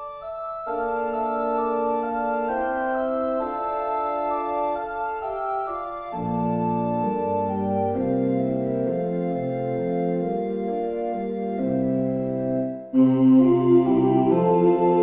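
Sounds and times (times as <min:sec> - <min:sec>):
organ playing chords: 0:00.0 - 0:15.0.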